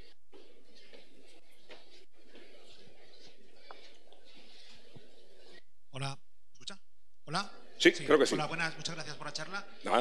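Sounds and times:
faint murmuring voices: 0:00.0 - 0:05.8.

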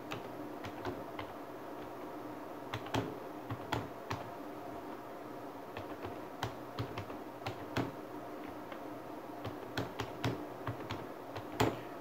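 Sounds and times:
keyboard keys clicking: 0:00.0 - 0:01.3, 0:02.7 - 0:04.3, 0:05.8 - 0:08.8, 0:09.4 - 0:11.8.

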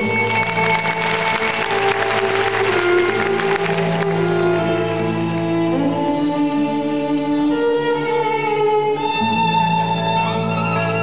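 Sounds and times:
crowd applause: 0:00.0 - 0:05.2
orchestral music with strings: 0:00.0 - 0:11.0.

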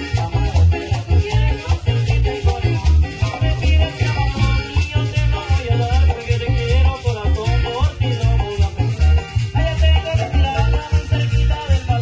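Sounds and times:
band playing dance music: 0:00.0 - 0:12.0
steady bass pulse: 0:00.0 - 0:12.0.

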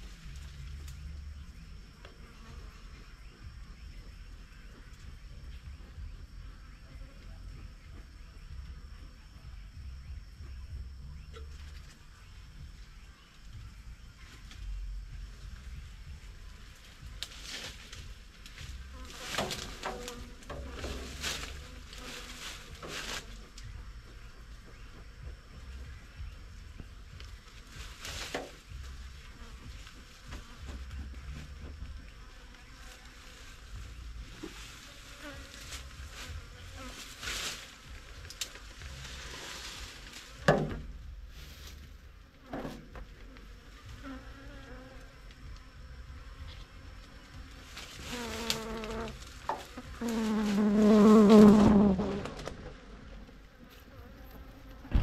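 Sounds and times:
honeybees buzzing: 0:00.0 - 0:55.0
knocks and scrapes of hive parts: 0:17.2 - 0:23.7, 0:27.6 - 0:32.2, 0:34.0 - 0:41.8, 0:42.4 - 0:43.4, 0:46.2 - 0:53.2, 0:53.8 - 0:55.0.

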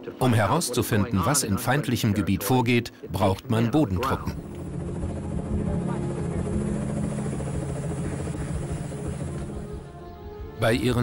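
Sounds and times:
turbine hum: 0:03.0 - 0:10.6
helicopter rotors chopping: 0:03.1 - 0:10.6.

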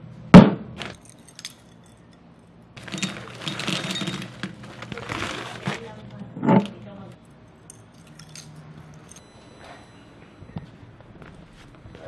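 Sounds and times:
objects clinking against glass bowl: 0:02.8 - 0:04.6, 0:07.6 - 0:10.1.

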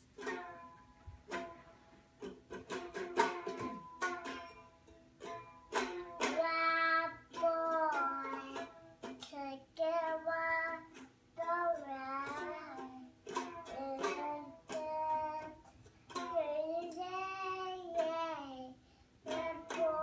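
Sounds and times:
toy guitar strumming: 0:00.2 - 0:20.0
child singing: 0:06.2 - 0:20.0.

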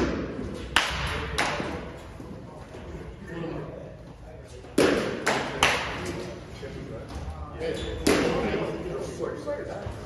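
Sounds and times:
baseball bat hitting ball: 0:00.0 - 0:01.8, 0:04.8 - 0:06.0.

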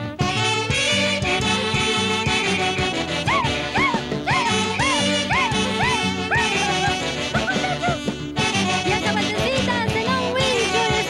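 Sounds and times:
instrumental band music: 0:00.0 - 0:11.0.

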